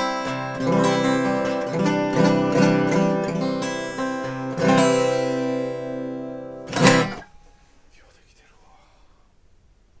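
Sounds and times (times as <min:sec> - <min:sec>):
acoustic guitar chords: 0:00.0 - 0:07.7.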